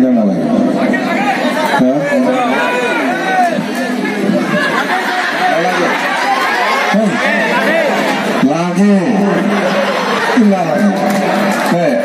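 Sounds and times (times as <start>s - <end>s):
man speaking over loudspeaker: 0.0s - 4.8s, 5.4s - 6.1s, 6.8s - 12.0s
crowd chatter: 0.0s - 12.0s.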